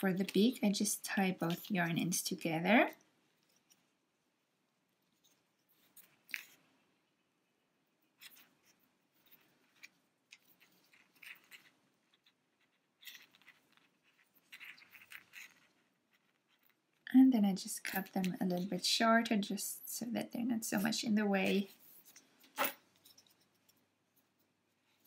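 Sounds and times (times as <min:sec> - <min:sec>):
rustles and scrapes of yarn: 0:04.9 - 0:25.0.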